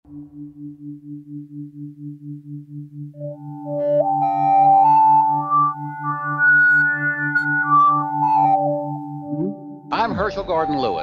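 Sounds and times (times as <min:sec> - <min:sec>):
pulsing low synthesizer tone: 0:00.1 - 0:09.9.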